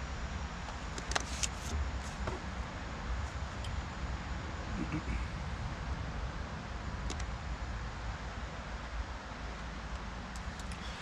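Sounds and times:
small clicks: 7.0s - 7.3s, 9.9s - 10.9s.

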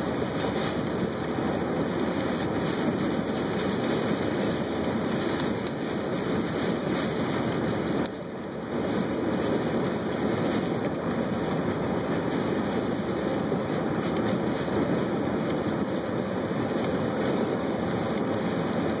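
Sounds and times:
heavy rain: 0.0s - 19.0s
tyres rushing on wet road: 0.0s - 19.0s.

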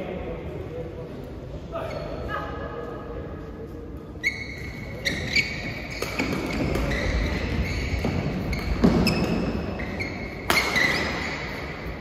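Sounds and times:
shoes squeaking on hall floor: 1.7s - 2.9s, 3.7s - 12.0s.

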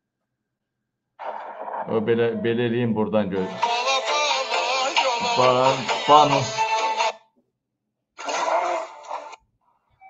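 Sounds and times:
video soundtrack music and voice: 5.0s - 6.7s.

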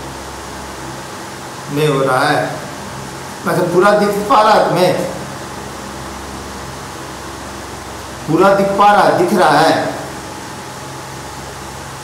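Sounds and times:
low hum: 0.0s - 12.0s
room hiss: 0.0s - 12.0s.

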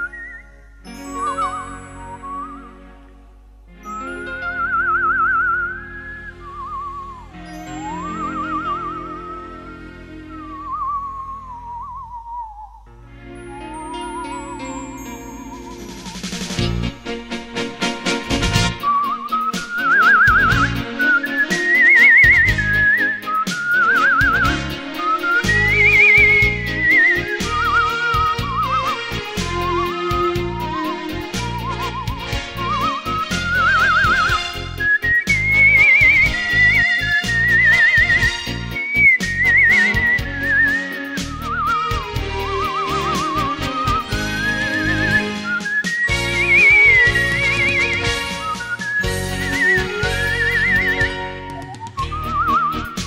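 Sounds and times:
person whistling a melody: 0.0s - 2.8s, 3.8s - 16.7s, 18.7s - 53.0s
instrumental backing track: 0.0s - 12.2s, 12.8s - 53.0s
bass and light percussion: 15.0s - 53.0s.

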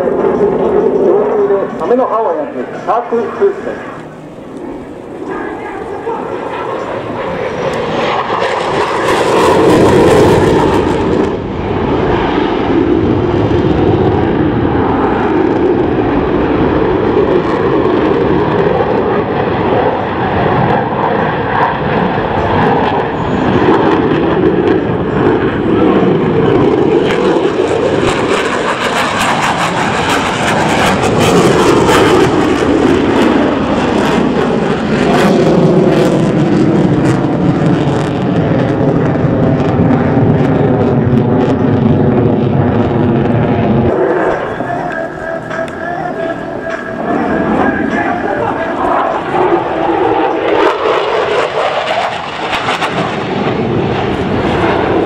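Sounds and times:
jet engine roaring: 0.0s - 55.0s.

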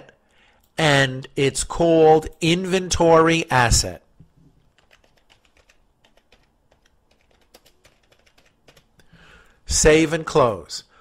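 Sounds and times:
faint computer keyboard typing: 4.6s - 9.1s.

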